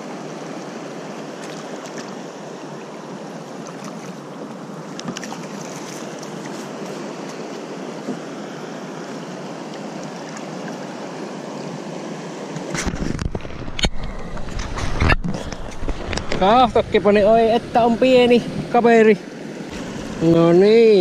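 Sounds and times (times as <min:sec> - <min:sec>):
river water rushing: 0:00.0 - 0:21.0.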